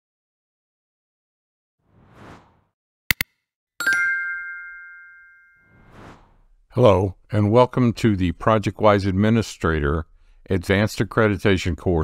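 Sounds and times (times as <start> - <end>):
soft whoosh: 1.9 - 2.8, 5.7 - 6.7.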